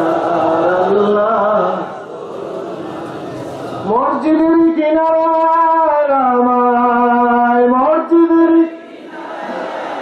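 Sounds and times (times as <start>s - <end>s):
man chanting into microphone: 0.0s - 2.4s, 3.7s - 8.8s.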